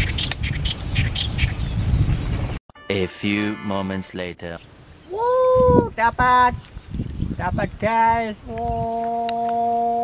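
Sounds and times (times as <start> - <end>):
birds chirping: 6.0 - 9.5.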